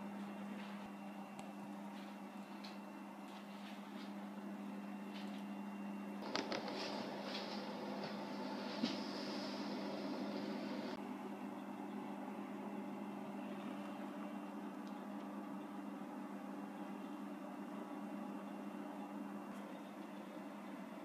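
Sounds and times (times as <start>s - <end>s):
steady low hum: 0.0s - 21.0s
hiss: 8.7s - 11.0s.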